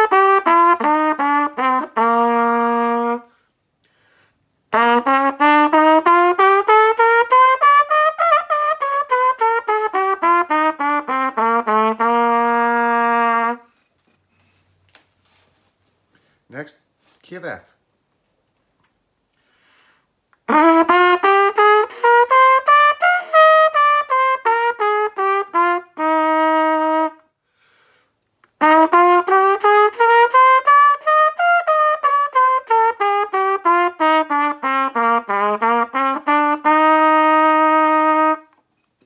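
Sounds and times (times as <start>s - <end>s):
player breathing: 3.3s - 4.5s, 16.0s - 16.5s, 19.3s - 20.2s, 27.4s - 28.2s.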